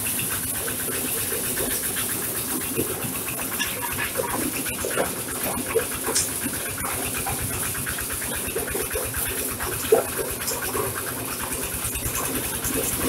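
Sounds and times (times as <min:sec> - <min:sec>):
corn sheller running: 0:00.0 - 0:13.0
rattle of kernels and cobs: 0:00.0 - 0:13.0.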